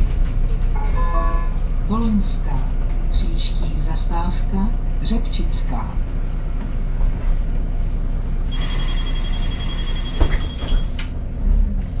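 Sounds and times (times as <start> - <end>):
bus engine rumble: 0.0 - 12.0
high electronic warning beep: 8.5 - 10.9
bus doors shutting: 8.5 - 12.0.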